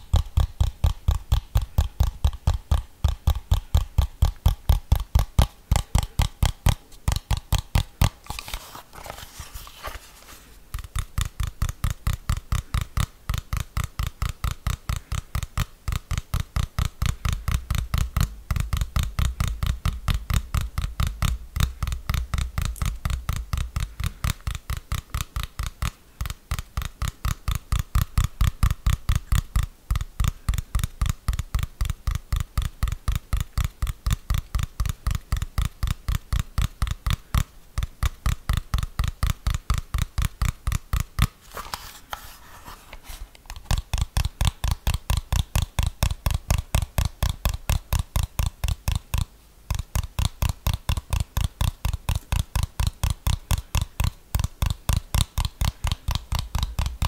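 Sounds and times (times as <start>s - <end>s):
fingers tapping plastic remote: 0.0s - 42.3s, 42.9s - 57.0s.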